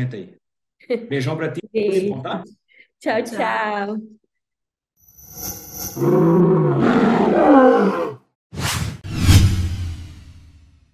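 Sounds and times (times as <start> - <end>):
lion roar effect: 6.0 - 8.2.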